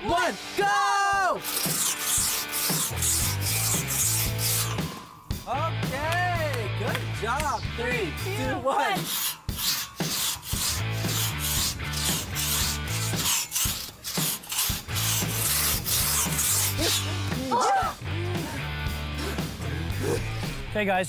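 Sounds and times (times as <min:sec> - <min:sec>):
background music: 0:00.0 - 0:21.0
crosscut saw rasping through log: 0:01.4 - 0:05.0, 0:08.8 - 0:17.4.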